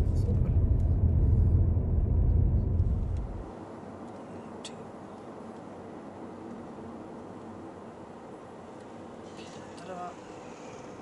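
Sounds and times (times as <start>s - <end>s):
car driving low rumble: 0.0s - 3.6s.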